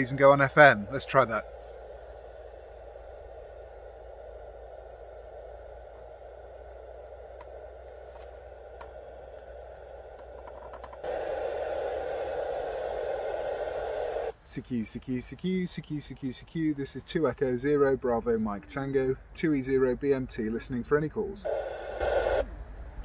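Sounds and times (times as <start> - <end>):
radio receiver hiss: 0.0 - 14.4, 20.8 - 23.0.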